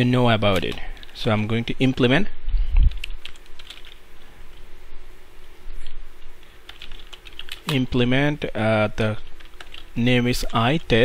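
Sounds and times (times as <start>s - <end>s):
computer keyboard typing: 2.9s - 4.0s, 6.7s - 7.8s, 9.2s - 11.0s.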